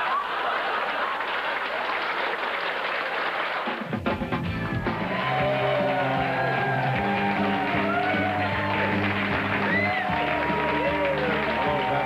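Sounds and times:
audience applauding: 0.0s - 12.0s
rock music with guitar: 4.0s - 11.8s.

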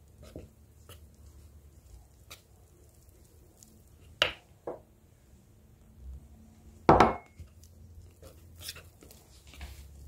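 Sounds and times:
whisk stirring batter in bowl: 0.0s - 4.2s, 7.4s - 10.0s.

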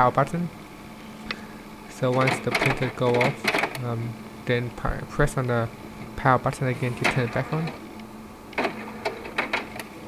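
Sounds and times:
printer mechanism humming: 0.9s - 10.0s
sharp printer clicks: 2.1s - 3.8s, 8.5s - 9.9s.

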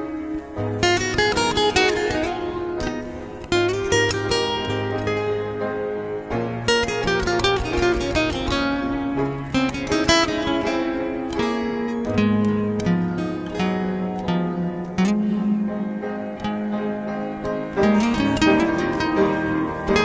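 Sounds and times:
acoustic guitar chords: 0.0s - 20.0s.

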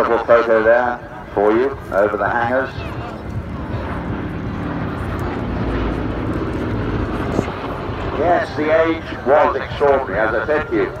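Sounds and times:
deep engine drone: 0.0s - 11.0s
propeller plane flying past: 0.0s - 11.0s.

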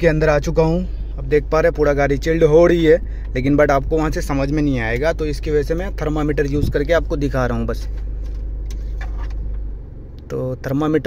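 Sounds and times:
air conditioning running: 0.0s - 11.0s
diesel engine idling: 0.0s - 11.0s.

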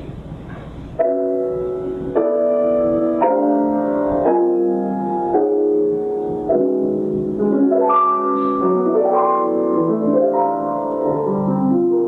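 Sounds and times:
grand piano playing slow chords: 0.9s - 12.0s.

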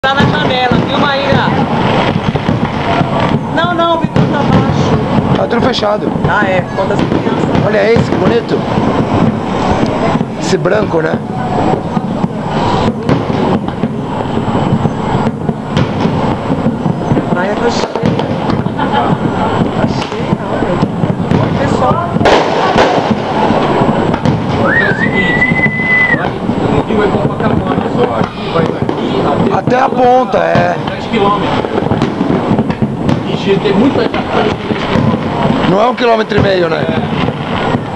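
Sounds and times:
fireworks bangs: 0.0s - 37.9s
high rising whistle: 24.6s - 26.4s.

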